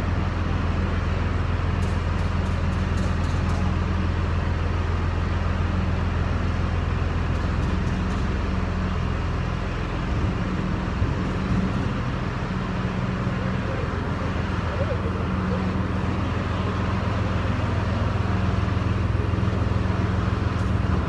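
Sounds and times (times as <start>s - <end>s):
machinery droning: 0.0s - 21.0s.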